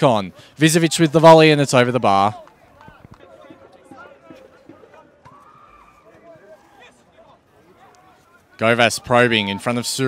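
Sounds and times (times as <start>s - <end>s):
distant shouts from players: 2.3s - 9.8s.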